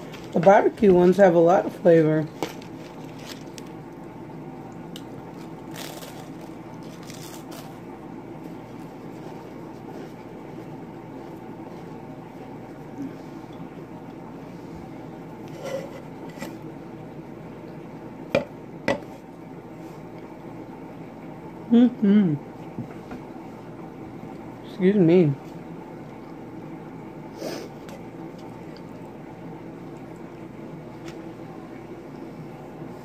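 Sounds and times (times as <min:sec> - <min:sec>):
steady low hum: 0:00.0 - 0:33.0
potato chips crunching: 0:02.4 - 0:03.9, 0:04.8 - 0:07.9.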